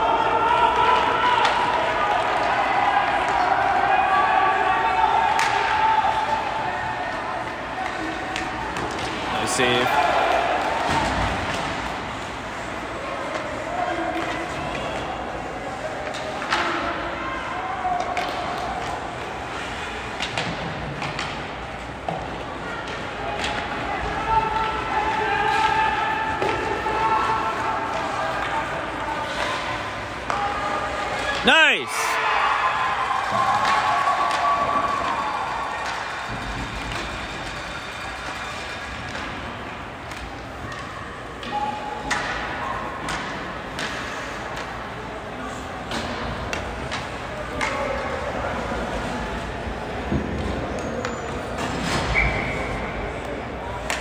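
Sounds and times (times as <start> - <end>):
hockey sticks and puck knocking: 18.0 - 19.0, 20.2 - 23.8.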